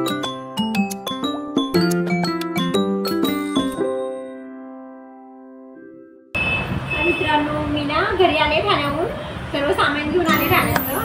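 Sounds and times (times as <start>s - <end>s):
woman speaking: 7.1s - 11.0s.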